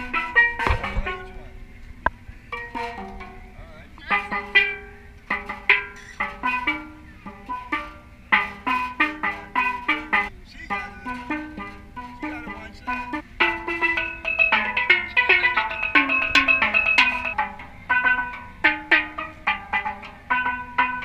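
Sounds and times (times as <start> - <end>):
steel pan notes ringing: 0.0 - 21.0.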